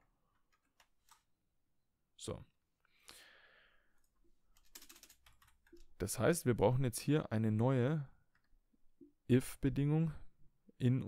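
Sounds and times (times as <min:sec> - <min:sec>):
faint keyboard keystrokes: 0:04.6 - 0:05.9.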